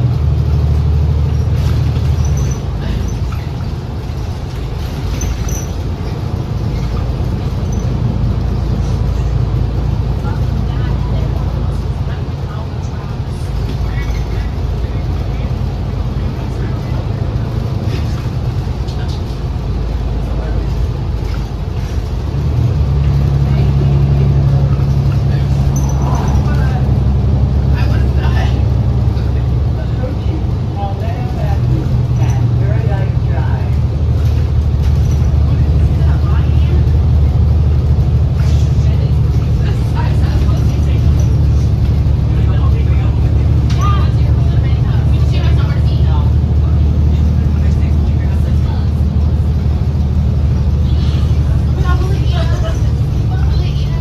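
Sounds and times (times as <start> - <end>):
bus engine drone: 0.0 - 54.0
road noise: 0.0 - 54.0.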